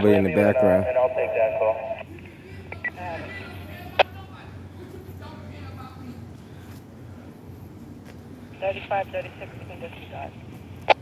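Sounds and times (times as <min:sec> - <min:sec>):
steady low hum: 0:00.0 - 0:11.0
faint background voices: 0:00.2 - 0:07.4.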